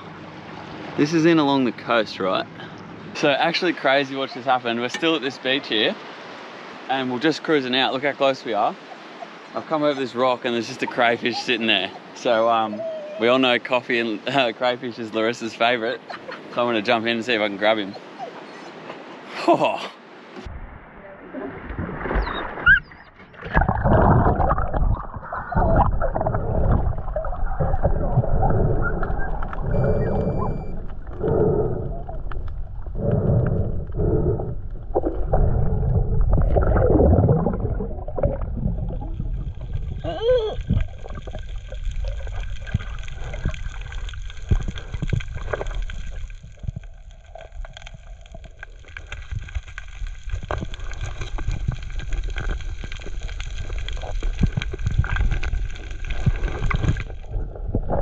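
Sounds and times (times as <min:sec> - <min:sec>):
underwater water rushing and bubbling: 0:00.0 - 0:12.9, 0:20.1 - 0:58.0.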